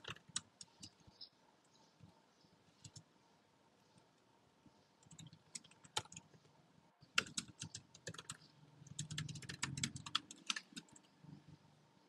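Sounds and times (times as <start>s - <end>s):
typing on computer keyboard: 0.0s - 1.0s, 2.8s - 3.0s, 5.0s - 6.4s, 7.1s - 11.1s.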